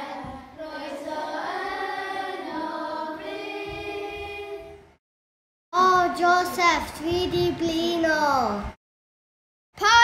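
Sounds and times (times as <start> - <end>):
choir singing long held notes: 0.0 - 5.0.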